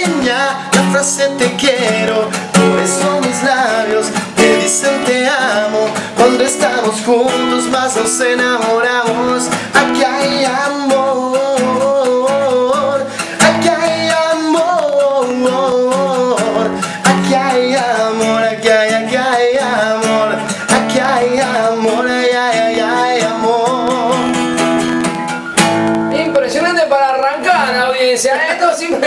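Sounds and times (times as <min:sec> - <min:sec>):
man singing: 0:00.0 - 0:25.1
acoustic guitar strumming: 0:00.0 - 0:29.0.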